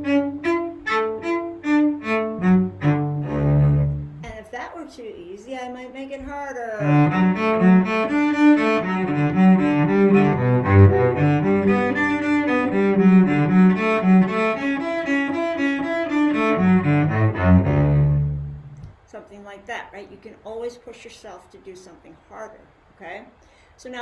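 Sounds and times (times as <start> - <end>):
bowed cello arpeggios: 0.0 - 4.3, 6.8 - 18.9.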